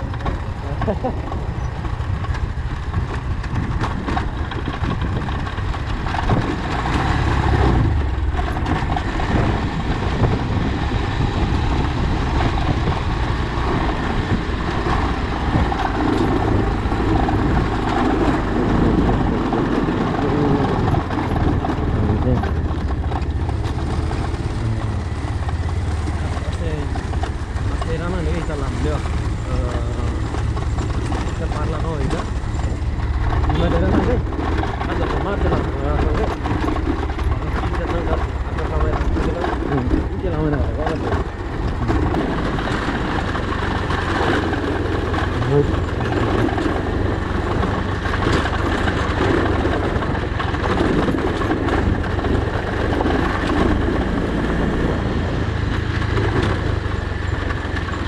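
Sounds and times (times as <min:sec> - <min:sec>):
motorcycle engine rumble: 0:00.0 - 0:58.0
person talking: 0:18.6 - 0:21.0, 0:21.8 - 0:22.6, 0:26.2 - 0:27.0, 0:27.6 - 0:30.3, 0:31.2 - 0:32.4, 0:33.4 - 0:36.4, 0:37.4 - 0:41.2, 0:45.4 - 0:46.3.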